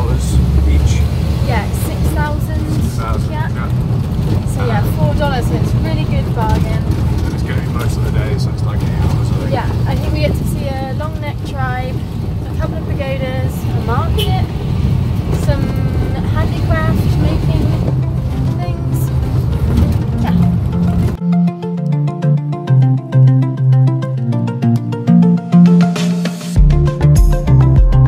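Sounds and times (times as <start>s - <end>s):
two people talking: 0.0s - 14.6s, 15.4s - 19.2s
vehicle engine rumble and road noise: 0.0s - 22.0s.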